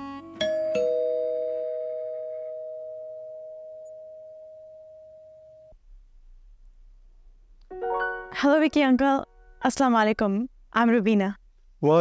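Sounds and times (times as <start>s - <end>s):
two-note doorbell chime: 0.4s - 5.7s.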